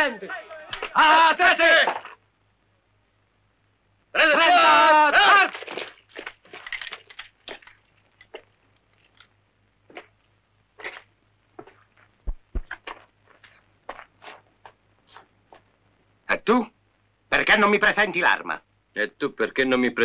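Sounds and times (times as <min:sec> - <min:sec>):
footsteps on gravel: 0:10.8 - 0:14.8
dull low thumps: 0:12.2 - 0:12.8.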